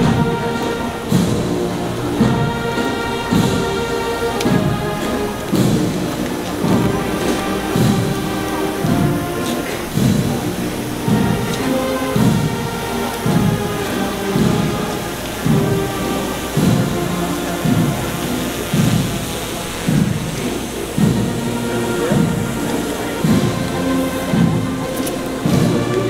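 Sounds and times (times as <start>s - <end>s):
band playing slow march: 0.0s - 26.0s.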